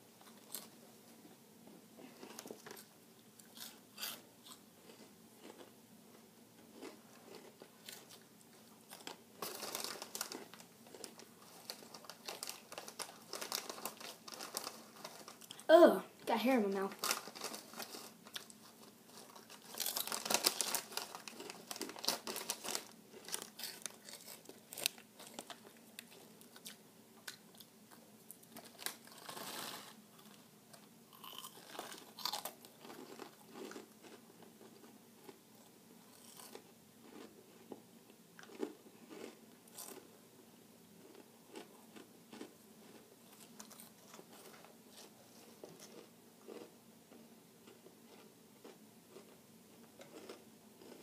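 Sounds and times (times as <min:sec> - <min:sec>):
crunchy snack being chewed: 0:00.2 - 0:00.7, 0:02.2 - 0:15.7, 0:17.0 - 0:37.8, 0:38.4 - 0:40.1, 0:41.0 - 0:51.0
chip bag rustling: 0:08.8 - 0:15.6, 0:16.6 - 0:26.3, 0:28.5 - 0:30.3.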